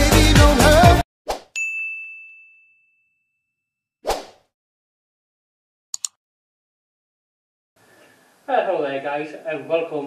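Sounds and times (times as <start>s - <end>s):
dance-pop music: 0.0s - 1.0s
bell-like ding: 1.6s - 3.6s
swish: 4.0s - 4.4s.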